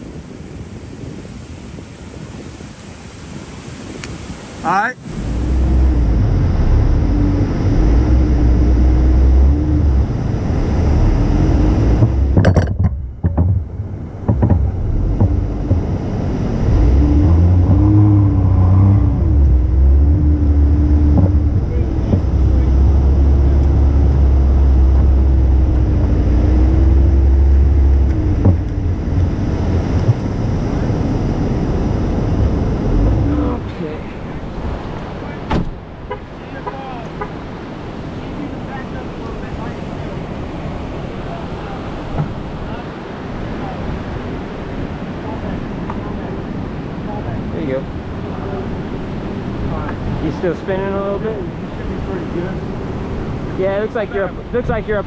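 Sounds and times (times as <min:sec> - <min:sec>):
engine running under load: 0:05.0 - 0:34.0.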